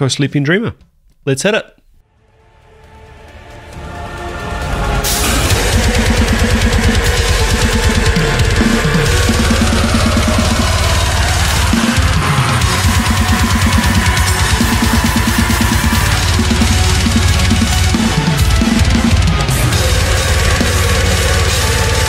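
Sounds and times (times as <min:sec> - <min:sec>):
heavy metal band music: 0:02.4 - 0:22.0
crashing cymbals: 0:02.8 - 0:22.0
fast kick drum strokes: 0:05.0 - 0:22.0.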